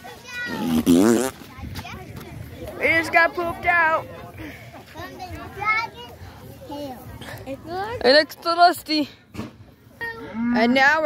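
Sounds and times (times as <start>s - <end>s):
children talking and calling out: 0.0s - 11.0s.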